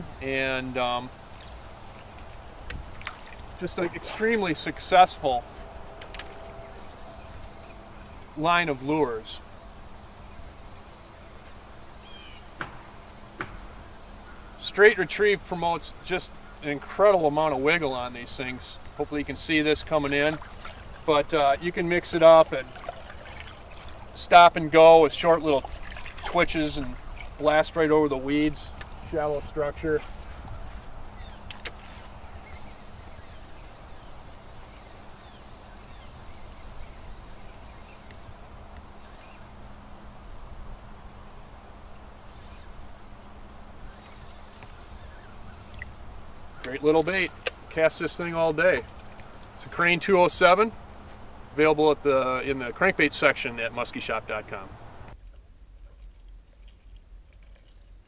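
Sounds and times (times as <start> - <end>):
low wind rumble: 0.0 - 55.7
faint steady low hum: 0.0 - 58.0
small underwater clicks: 1.4 - 3.6, 28.6 - 29.3, 46.6 - 49.6
bird chirps: 3.6 - 8.8, 11.8 - 13.0, 30.0 - 39.6, 42.2 - 42.8.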